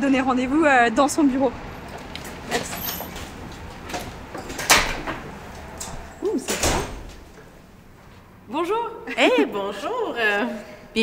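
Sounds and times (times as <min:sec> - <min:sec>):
door opening and shutting: 0:01.9 - 0:07.5
knocks and clunks: 0:01.9 - 0:07.5.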